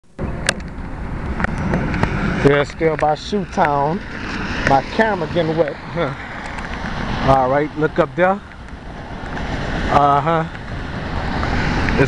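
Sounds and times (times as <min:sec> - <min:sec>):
road traffic rumble: 0:00.0 - 0:12.0
wind on microphone: 0:00.2 - 0:12.0.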